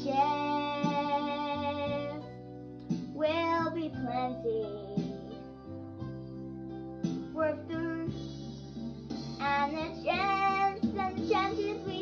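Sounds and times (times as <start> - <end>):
child singing: 0.0 - 2.3, 3.2 - 5.4, 7.3 - 8.2, 9.4 - 12.0
backing music: 0.0 - 12.0.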